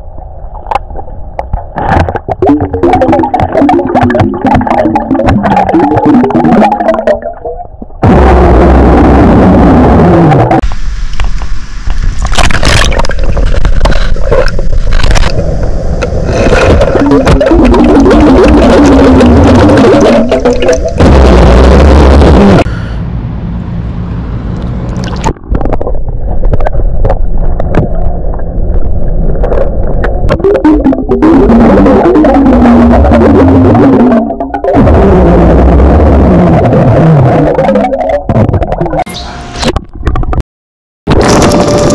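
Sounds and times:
bubbles rushing underwater: 0:01.8 - 0:08.4, 0:15.3 - 0:21.8
man burping underwater: 0:02.3 - 0:07.4, 0:16.2 - 0:22.7, 0:30.3 - 0:39.0.

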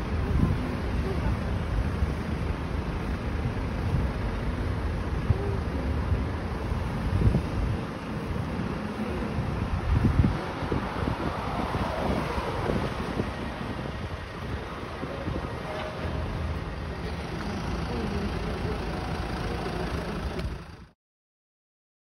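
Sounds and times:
low vehicle engine rumble: 0:00.0 - 0:21.0
wind buffeting microphone: 0:06.1 - 0:16.5.

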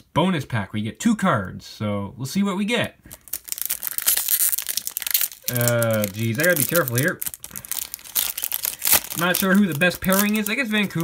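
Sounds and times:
foil wrapper crinkling and tearing: 0:03.1 - 0:11.0.

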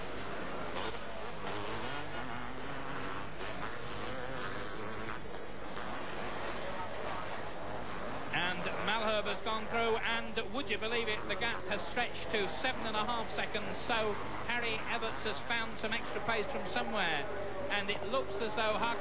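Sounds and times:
motocross bike engines revving: 0:00.0 - 0:19.0.

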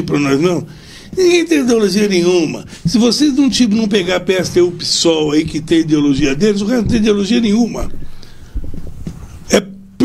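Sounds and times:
man speaking: 0:00.0 - 0:08.0.

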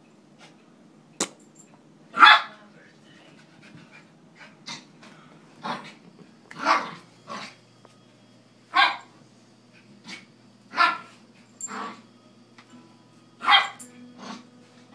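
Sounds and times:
dog barking: 0:13.4 - 0:13.8.

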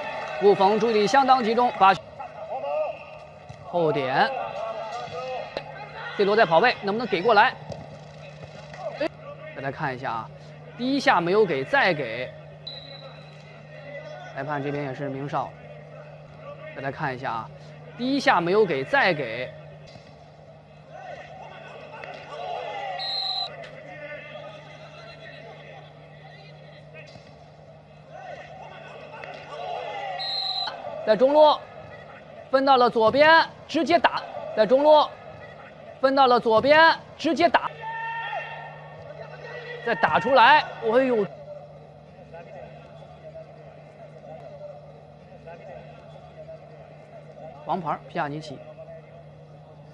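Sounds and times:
players shouting: 0:00.0 - 0:49.9
steady low hum: 0:01.1 - 0:49.9
referee's whistle blast: 0:12.6 - 0:13.5, 0:22.9 - 0:23.6, 0:30.1 - 0:30.8.

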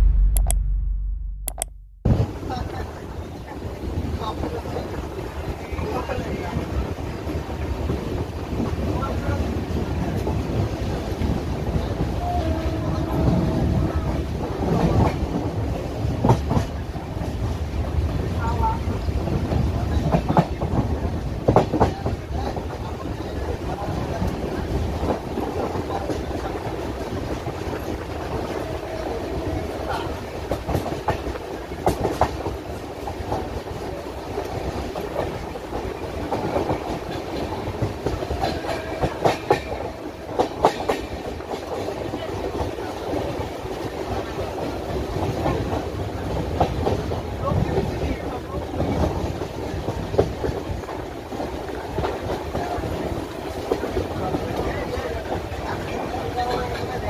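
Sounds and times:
clickety-clack over rail joints: 0:02.1 - 0:57.0.

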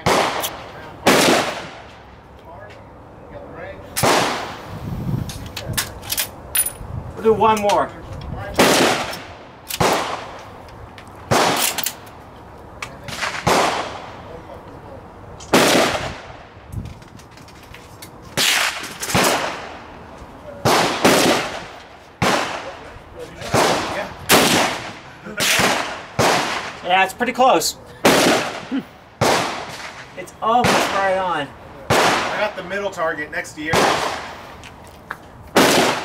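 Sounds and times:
rifle gunshots echoing: 0:00.0 - 0:02.0, 0:04.0 - 0:04.6, 0:08.6 - 0:10.5, 0:11.3 - 0:12.0, 0:13.0 - 0:14.3, 0:15.5 - 0:16.3, 0:18.4 - 0:19.9, 0:20.6 - 0:26.8, 0:28.0 - 0:32.6, 0:33.6 - 0:34.4, 0:35.6 - 0:36.0.

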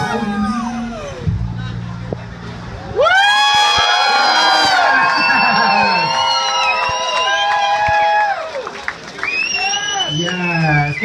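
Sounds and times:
bass notes of music: 0:00.0 - 0:04.0
audience cheering and screaming: 0:02.8 - 0:11.0.

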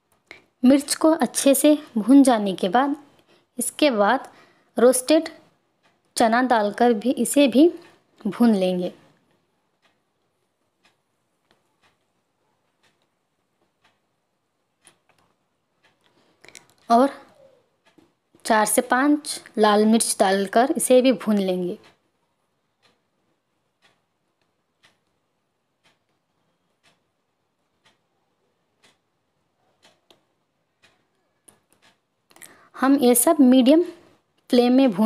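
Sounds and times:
faint ticks: 0:05.3 - 0:06.2, 0:08.9 - 0:14.1, 0:14.8 - 0:18.5, 0:23.8 - 0:25.2, 0:25.8 - 0:32.7.

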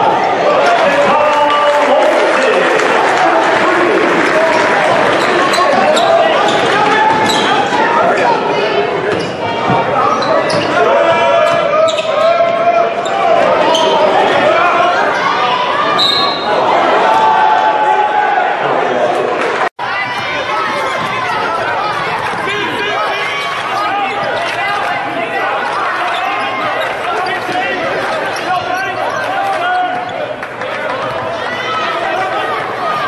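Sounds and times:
many voices chattering: 0:00.0 - 0:33.0.

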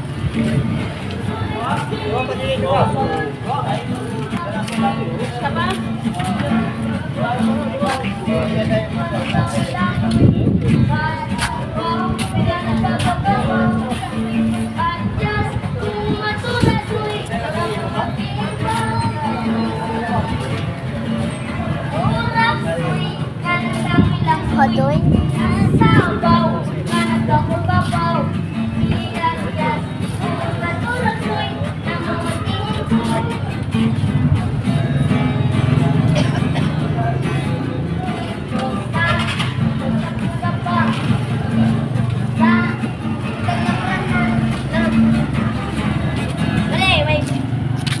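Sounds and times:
children singing: 0:00.0 - 0:47.3
backing music: 0:00.0 - 0:48.0
small guitar playing: 0:00.0 - 0:48.0.

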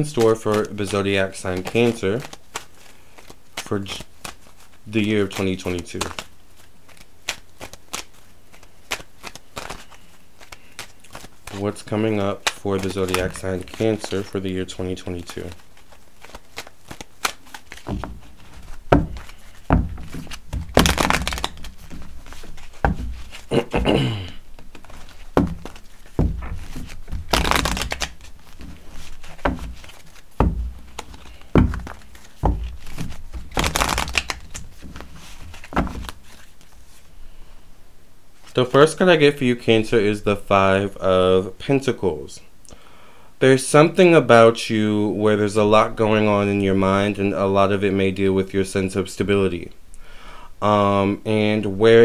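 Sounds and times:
cards being shuffled: 0:00.0 - 0:37.2.

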